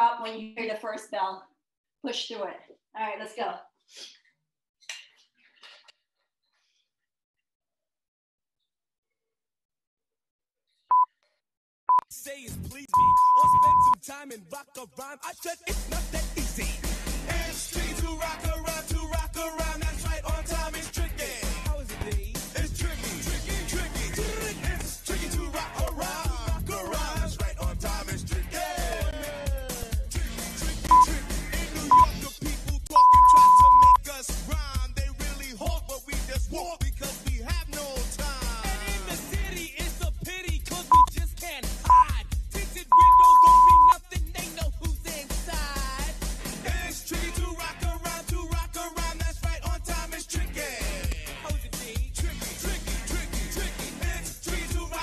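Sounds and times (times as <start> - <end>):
interval timer beeping: 13.0 - 14.0, 33.0 - 34.0, 40.9 - 41.1, 41.9 - 42.1, 43.0 - 43.9
background music: 15.2 - 55.0.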